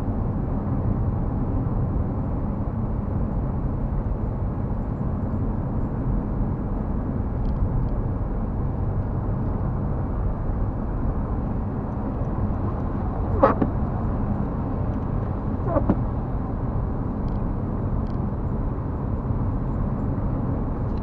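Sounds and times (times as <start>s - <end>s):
car road and engine noise: 0.0s - 21.0s
short knocks: 13.3s - 13.8s, 15.6s - 16.1s.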